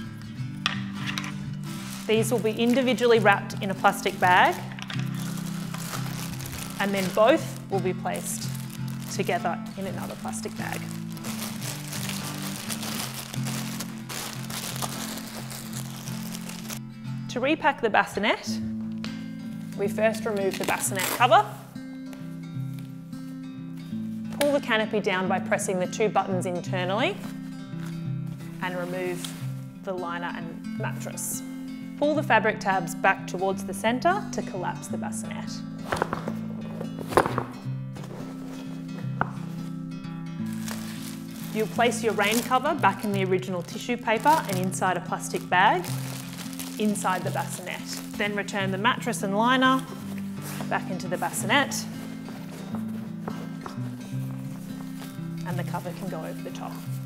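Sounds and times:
background music with held chords: 0.0 - 57.0
plastic bags rustling: 0.9 - 16.8, 27.2 - 29.7, 35.9 - 56.0.

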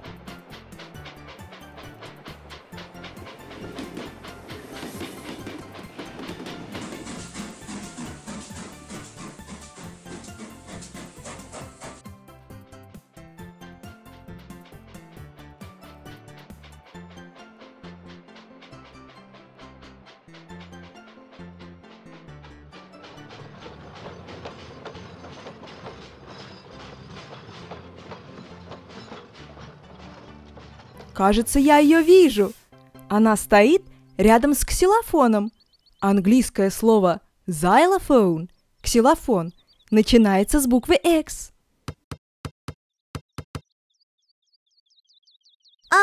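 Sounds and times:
cartoon steam train clicks: 0.0 - 12.1, 13.6 - 37.0
light background music: 0.0 - 41.5
high falling bird chirps: 35.4 - 36.1, 38.5 - 40.1, 43.2 - 46.0.

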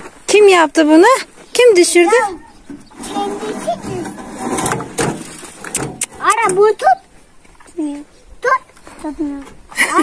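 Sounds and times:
metal wheelbarrow scraping and rattling: 2.5 - 6.7.

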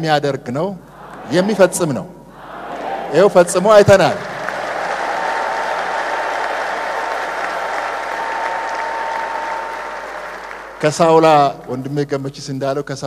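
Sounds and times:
audience applauding: 2.7 - 12.0.

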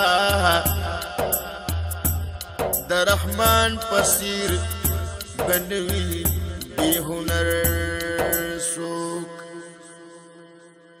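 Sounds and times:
person reciting poem: 0.0 - 11.0.

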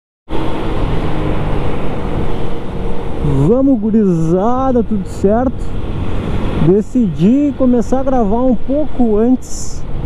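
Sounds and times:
motorcycle engine cruising: 0.3 - 9.1
wind and road noise: 0.3 - 10.0.

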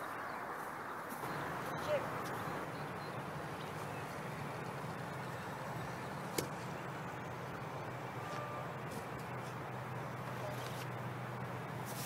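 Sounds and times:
low outdoor rumble: 0.1 - 12.0.

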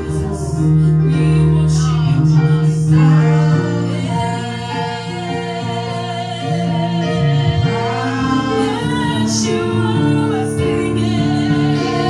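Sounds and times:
musical accompaniment: 0.0 - 12.0
woman singing gospel song: 0.0 - 12.0.

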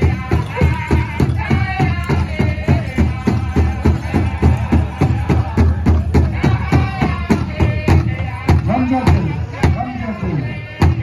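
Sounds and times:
big drum beating: 0.0 - 9.8
high singing voices: 0.0 - 11.0.

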